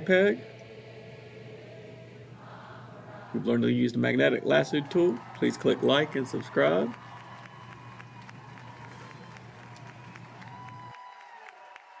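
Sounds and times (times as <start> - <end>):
low hum: 0.0 - 10.9.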